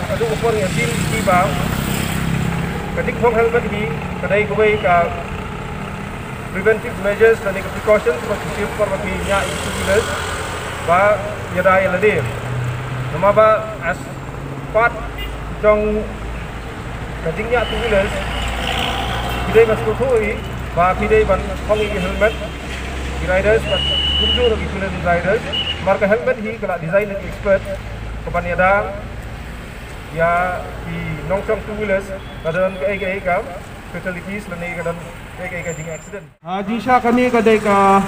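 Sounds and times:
man speaking into a microphone: 0.0s - 1.9s, 2.8s - 5.4s, 6.5s - 12.4s, 13.1s - 16.4s, 17.1s - 18.4s, 19.2s - 22.6s, 23.2s - 29.1s, 30.1s - 38.0s
man's amplified speech: 0.0s - 1.9s, 2.8s - 5.4s, 6.5s - 12.4s, 13.1s - 16.4s, 17.1s - 22.6s, 23.2s - 29.1s, 30.1s - 38.0s
motor vehicle engine rumbling: 0.0s - 38.0s.

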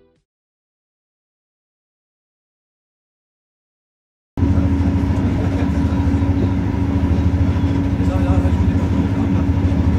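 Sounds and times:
train carriage rumble and hum: 4.4s - 9.9s.

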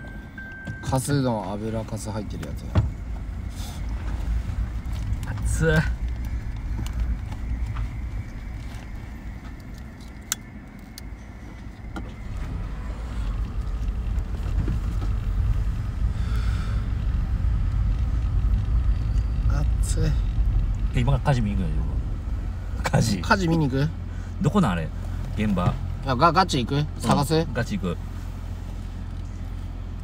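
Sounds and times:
car engine rumble: 0.0s - 30.0s
road noise: 0.0s - 30.0s.

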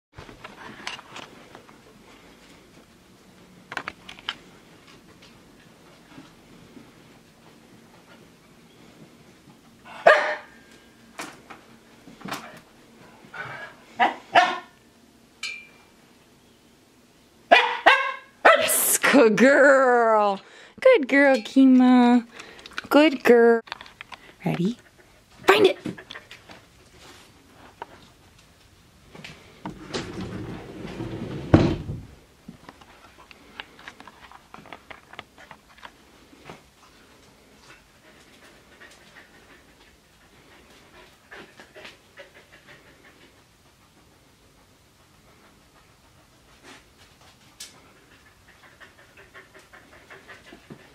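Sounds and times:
dog barking sharply: 10.0s - 10.5s, 14.0s - 14.8s, 17.5s - 18.8s
dog panting and sniffing: 23.7s - 28.2s, 32.8s - 50.9s.

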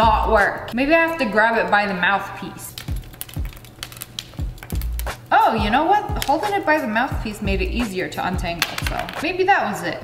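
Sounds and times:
bass thumps of music beat: 0.0s - 0.6s, 4.4s - 9.2s
earbuds clicking and rattling: 2.7s - 5.2s, 8.5s - 9.3s.

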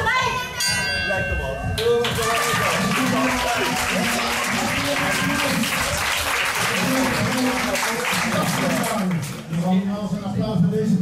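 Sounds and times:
ring bell ringing: 0.6s - 2.0s.

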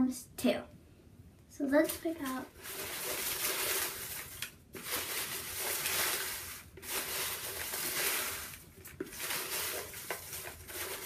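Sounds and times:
paper slips rustling in a plastic bowl: 1.8s - 11.0s.

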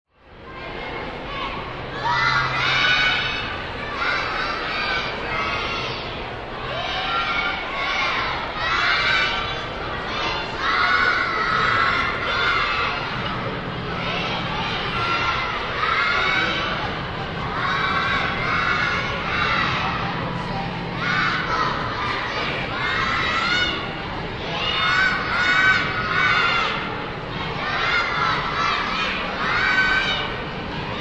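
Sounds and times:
children shouting a cheer: 0.4s - 31.0s.

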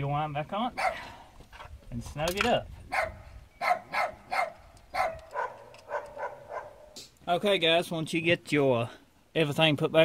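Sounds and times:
dog barking: 0.8s - 1.1s, 2.9s - 7.0s.

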